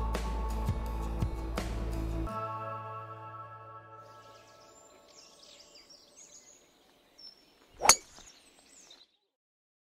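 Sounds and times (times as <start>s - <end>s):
birdsong: 4.0s - 9.4s
golf club striking ball: 7.8s - 8.1s.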